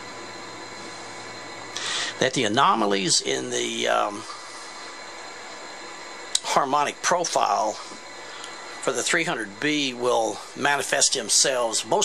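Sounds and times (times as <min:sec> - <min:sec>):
faint steady tones: 0:00.0 - 0:12.0
steady background hiss: 0:00.0 - 0:12.0
short breath: 0:01.8 - 0:02.2.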